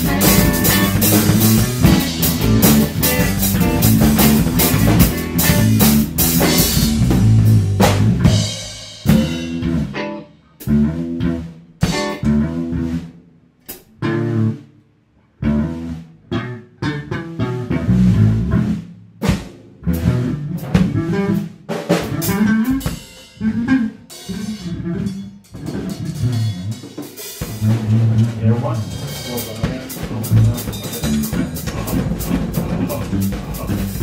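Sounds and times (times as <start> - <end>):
drum kit: 0.0 - 14.5, 15.4 - 34.0
electric bass: 0.0 - 34.0.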